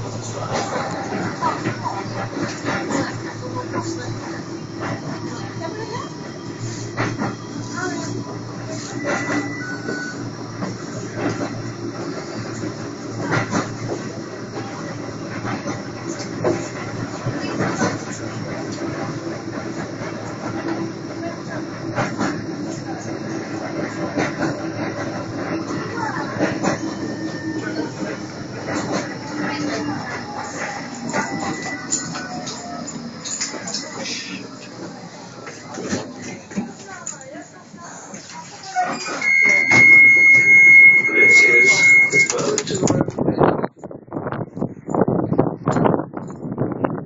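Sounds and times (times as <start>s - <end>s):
tram running on track: 0.0s - 47.0s
high squeal: 38.6s - 42.6s.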